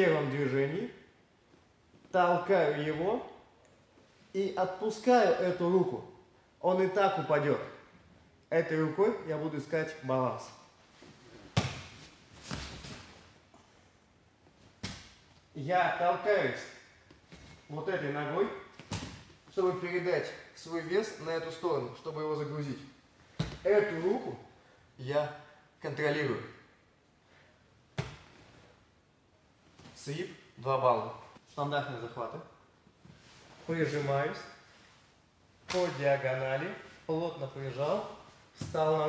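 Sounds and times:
bodies thumping on mat: 0:11.4 - 0:13.2.

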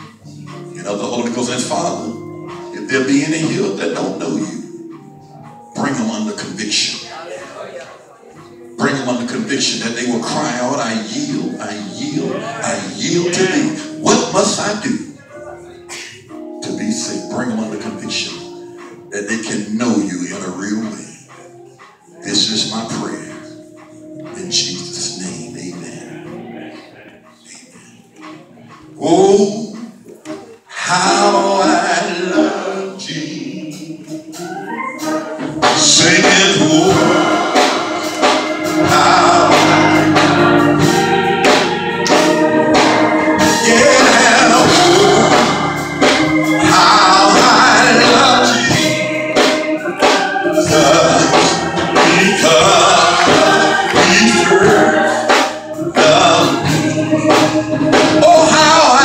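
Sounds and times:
congregation murmuring prayer: 0:00.0 - 0:59.0
group singing gospel: 0:00.0 - 0:59.0
live instruments: 0:00.0 - 0:59.0.

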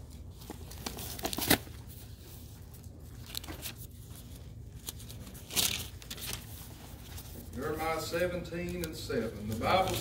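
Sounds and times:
low room hum: 0:00.0 - 0:10.0
paper pages rustling: 0:00.0 - 0:10.0.

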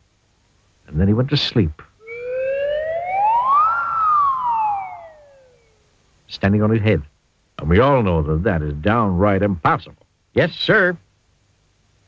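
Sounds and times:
cartoon rising whistle tone: 0:02.0 - 0:05.8.

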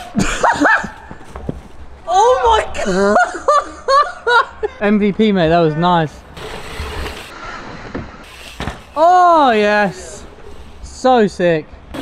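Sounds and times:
bike tyre noise on dirt: 0:06.1 - 0:12.0
bike landing knock: 0:07.9 - 0:09.0.

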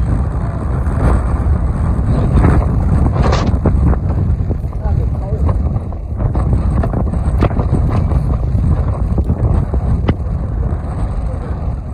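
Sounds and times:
wind rumbling on microphone: 0:00.0 - 0:11.9.

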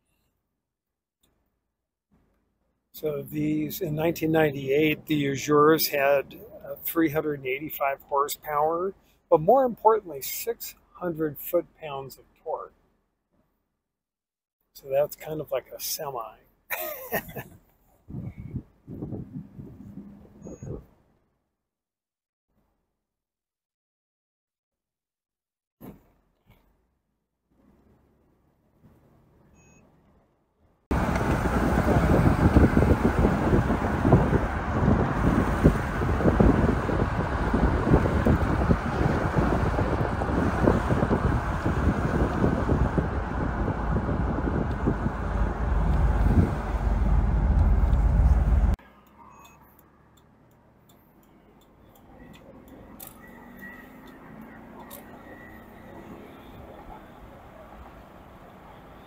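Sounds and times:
wind and road noise: 0:03.0 - 0:13.4, 0:17.1 - 0:21.2, 0:30.9 - 0:59.0
car running with low hum: 0:18.1 - 0:20.9, 0:30.9 - 0:58.8.

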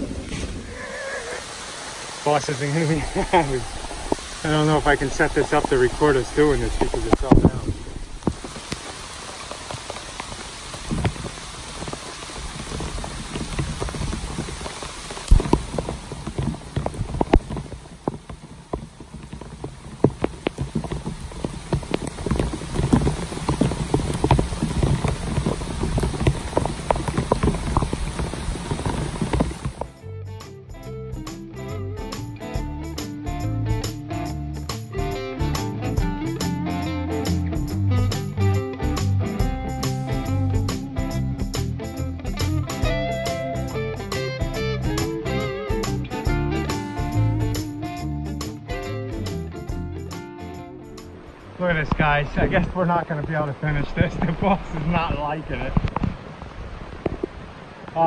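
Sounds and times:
steady rain falling: 0:00.0 - 0:30.0, 0:31.2 - 0:58.0
raindrops clicking close by: 0:00.7 - 0:30.0, 0:31.2 - 0:58.0
guitar music with steady beat: 0:29.8 - 0:51.4.

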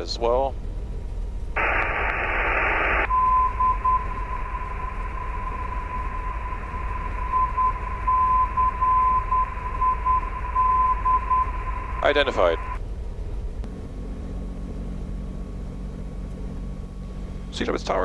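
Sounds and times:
radio static hiss: 0:01.6 - 0:12.8
morse code beeps: 0:03.1 - 0:12.8.

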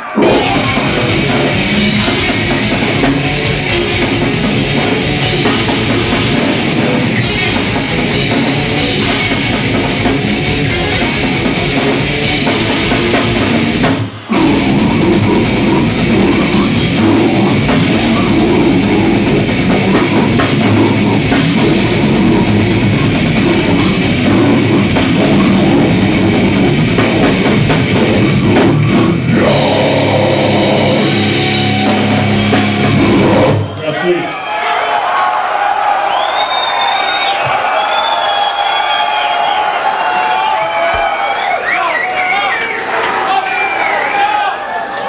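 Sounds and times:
death metal band playing live: 0:00.0 - 0:34.0
crowd cheering and shouting: 0:00.0 - 0:45.0
piercing whistles: 0:36.0 - 0:39.8, 0:40.6 - 0:44.2.

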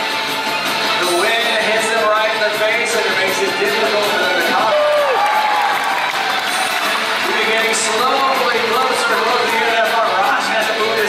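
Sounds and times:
crowd noise: 0:00.0 - 0:11.0
audience cheering and applauding: 0:03.6 - 0:10.3
shout falling in pitch: 0:04.5 - 0:06.4.

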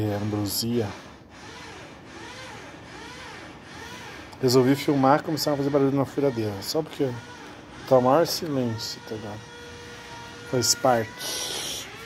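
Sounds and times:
power drill whining: 0:01.3 - 0:12.0.

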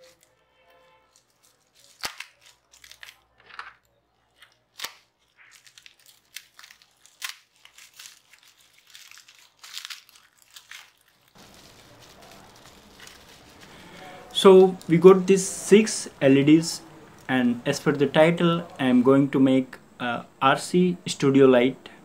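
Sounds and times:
bubble wrap crinkling: 0:00.0 - 0:15.6
bubble wrap snaps: 0:01.1 - 0:03.7, 0:04.3 - 0:14.9.

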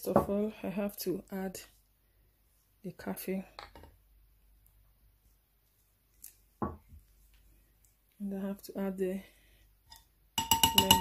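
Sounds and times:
glass bowl knocking on table: 0:10.4 - 0:11.0.

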